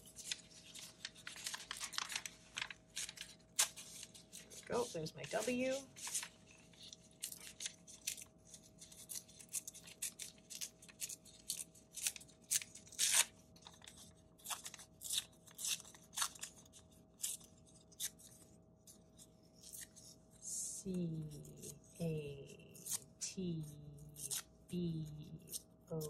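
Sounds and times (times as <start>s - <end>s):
paper tearing: 0.0s - 18.5s.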